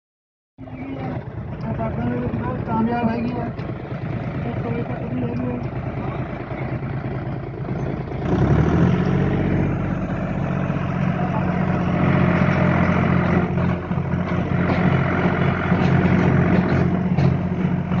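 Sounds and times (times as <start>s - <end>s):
tractor engine running: 0.6s - 18.0s.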